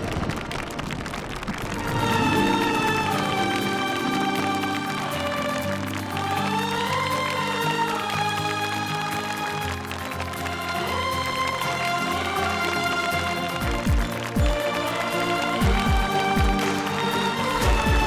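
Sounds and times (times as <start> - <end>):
dramatic music: 1.5 - 18.0.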